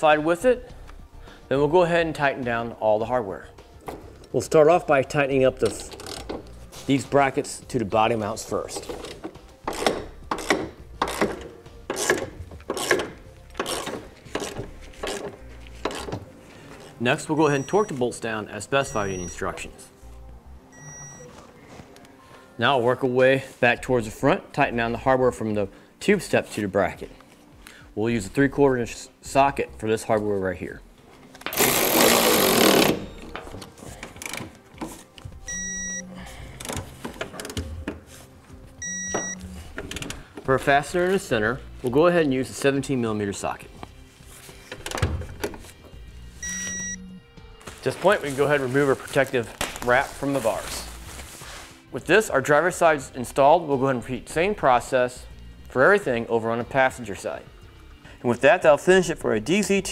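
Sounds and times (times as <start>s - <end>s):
socket ratchet clicking: 9.0s - 16.2s, 31.4s - 33.4s
short electronic beeps: 18.9s - 19.4s, 38.8s - 39.6s, 46.4s - 47.1s
impact wrench running: 31.5s - 33.4s.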